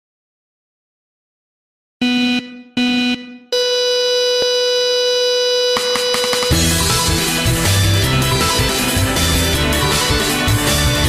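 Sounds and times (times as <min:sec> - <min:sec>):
buzzy synthesizer tones: 0:02.0 - 0:08.3.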